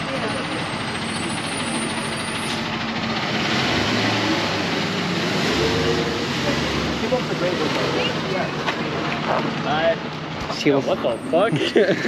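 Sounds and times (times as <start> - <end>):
city street traffic: 0.0 - 12.0
truck engine running: 0.0 - 12.0.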